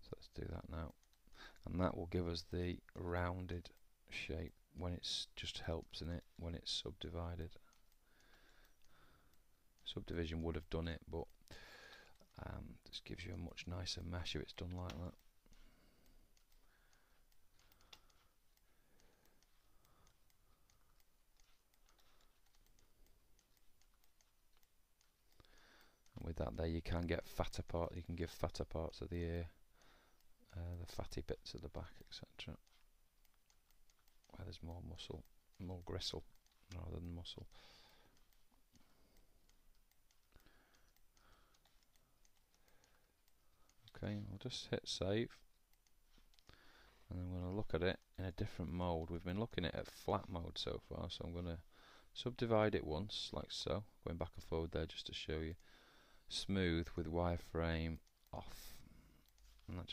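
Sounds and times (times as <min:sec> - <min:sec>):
computer mouse clicks: 0:00.6 - 0:01.9, 0:05.2 - 0:50.7, 0:53.1 - 0:59.9.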